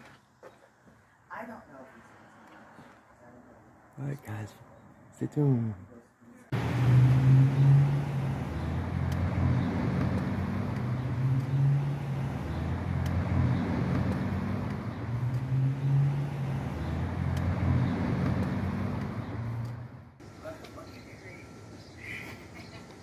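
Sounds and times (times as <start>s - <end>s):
road noise: 0.0s - 23.0s
car engine humming: 6.5s - 22.7s.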